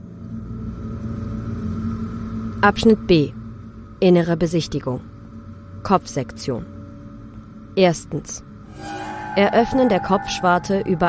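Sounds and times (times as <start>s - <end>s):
low ambient drone: 0.0s - 11.0s
faint high held tone: 8.7s - 11.0s.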